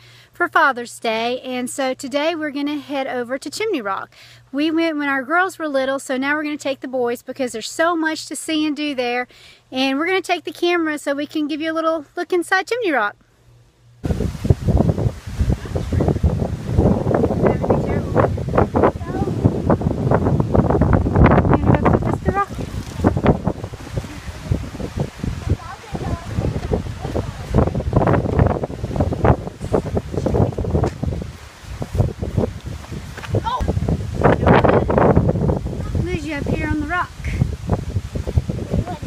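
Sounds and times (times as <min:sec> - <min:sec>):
wind buffeting microphone: 0:14.0 - 0:39.0.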